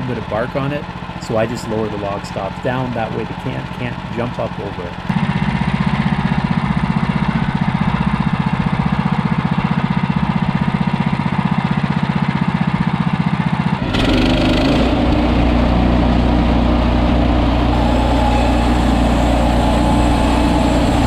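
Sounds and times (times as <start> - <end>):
sawmill engine running: 0.0 - 21.0.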